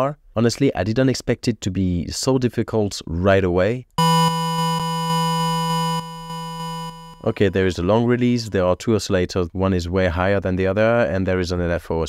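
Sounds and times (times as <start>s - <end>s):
synthesizer held note chopped: 4.0s - 8.5s.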